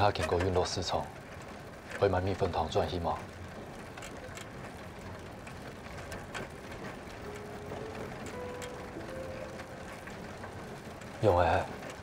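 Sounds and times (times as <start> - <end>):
rickshaw rattling and clicking: 0.0 - 12.0.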